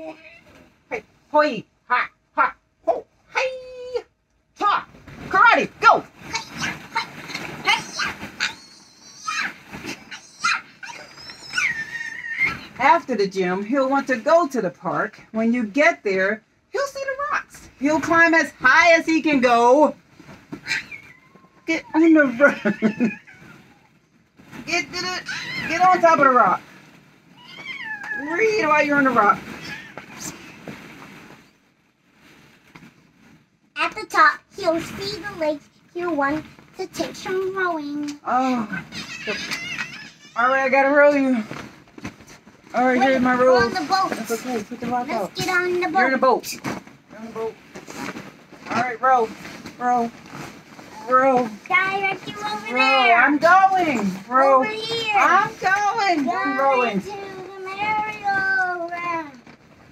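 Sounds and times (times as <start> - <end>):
plastic balls rustling and knocking: 4.9 - 14.5, 22.6 - 38.0, 38.8 - 59.9.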